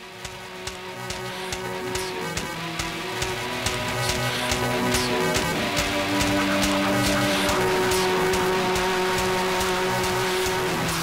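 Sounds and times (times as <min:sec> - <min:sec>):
background music held notes: 0:00.0 - 0:11.0
light ticking beat: 0:00.1 - 0:11.0.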